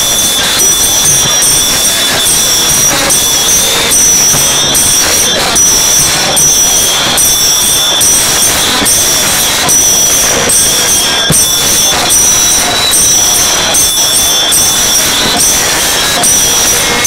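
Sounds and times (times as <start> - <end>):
hand cymbals clashing: 0.0 - 17.0.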